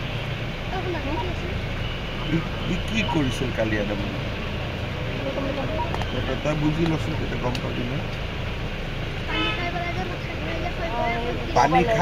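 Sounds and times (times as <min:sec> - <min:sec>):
crowd talking: 0:00.6 - 0:12.0
vehicle horn toot: 0:09.3 - 0:09.8.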